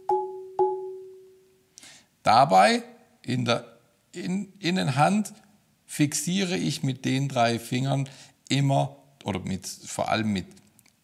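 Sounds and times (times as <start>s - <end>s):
marimba bars struck: 0.0s - 1.3s.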